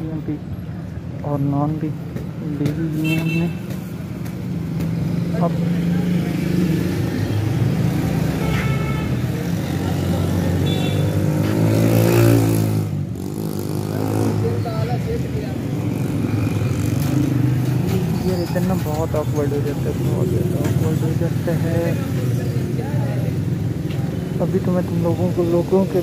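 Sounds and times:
engine revving: 9.4s - 14.6s.

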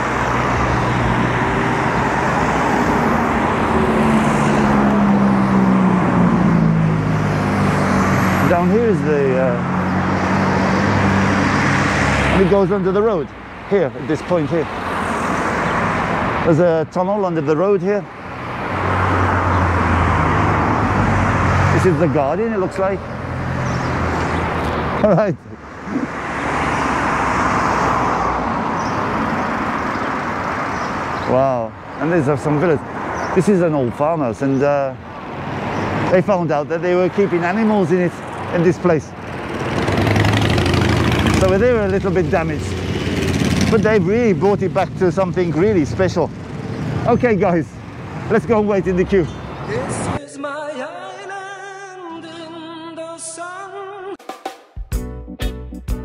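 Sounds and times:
cars passing on road: 0.0s - 50.3s.

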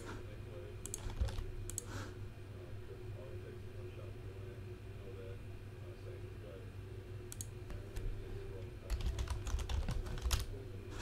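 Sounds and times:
low hum: 0.0s - 11.0s
keyboard typing: 0.9s - 1.8s, 8.9s - 10.5s.

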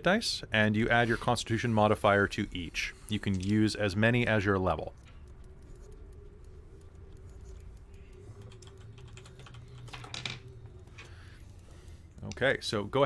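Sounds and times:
low steady hum: 0.0s - 13.0s
computer keyboard typing: 3.1s - 13.0s.

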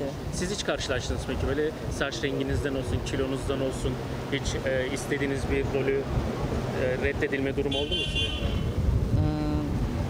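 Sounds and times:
vehicle horn: 7.7s - 8.8s.

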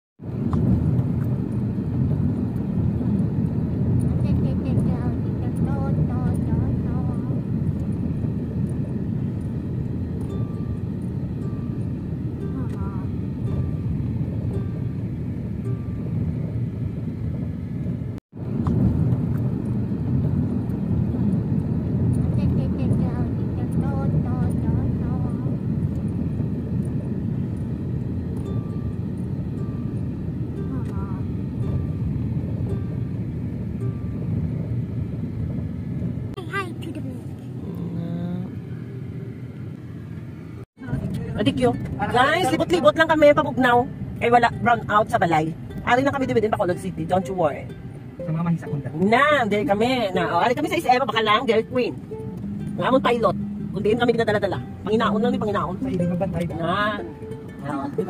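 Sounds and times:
car driving rumble from inside: 0.2s - 58.0s.

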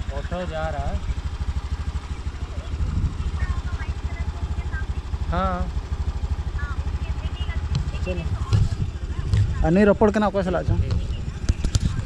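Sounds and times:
motorcycle engine idling: 0.0s - 12.0s
faint voices: 10.7s - 12.0s.

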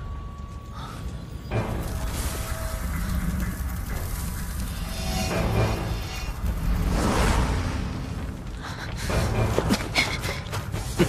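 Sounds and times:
low rumble: 0.0s - 10.0s
fire crackling: 0.1s - 11.0s.

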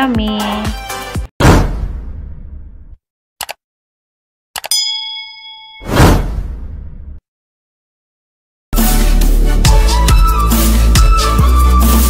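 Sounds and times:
bell-like notification ding: 4.7s - 6.1s.

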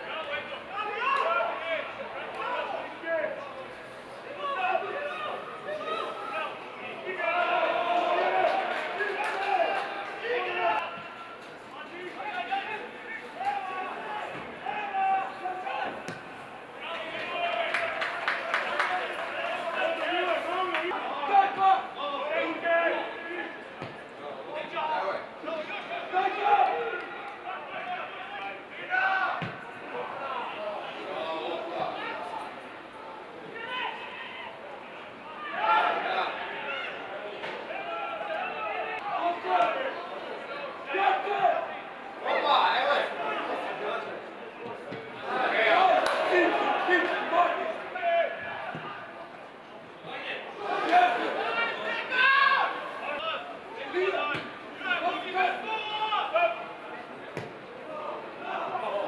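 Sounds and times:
footballers shouting: 0.0s - 59.0s.

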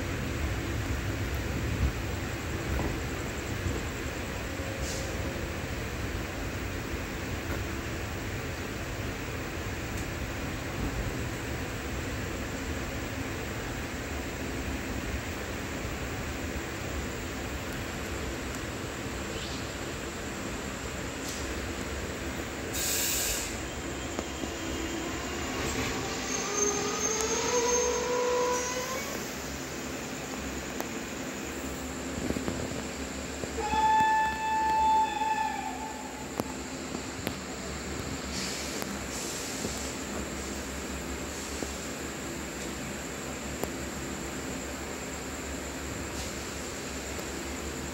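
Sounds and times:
train rumbling: 0.0s - 47.9s
short hiss: 21.2s - 21.7s, 22.7s - 23.7s, 38.2s - 40.6s, 46.1s - 46.7s
train wheels squealing: 22.8s - 29.6s, 33.6s - 36.7s
locomotive horn blast: 33.6s - 36.5s.

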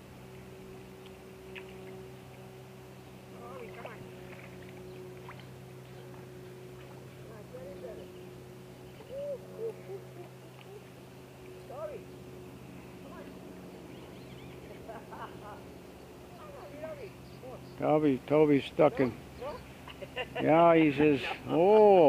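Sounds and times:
low motor hum: 0.0s - 22.0s.

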